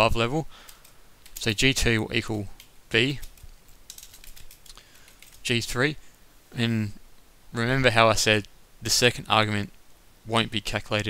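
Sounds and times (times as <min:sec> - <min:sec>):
computer keyboard typing: 0:00.6 - 0:01.5, 0:02.6 - 0:05.5.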